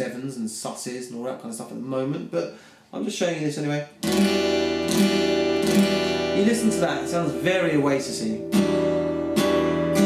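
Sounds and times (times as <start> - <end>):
acoustic guitar chord strummed: 4.0 - 10.0.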